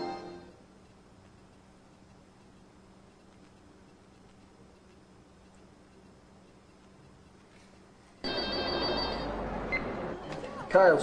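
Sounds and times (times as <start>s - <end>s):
busy room background noise: 0.0s - 11.0s
telephone ringing: 8.2s - 9.9s.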